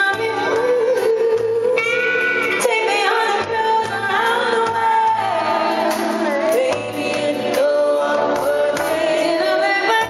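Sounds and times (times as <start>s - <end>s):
band accompaniment: 0.0s - 10.0s
woman singing ballad: 0.0s - 10.0s.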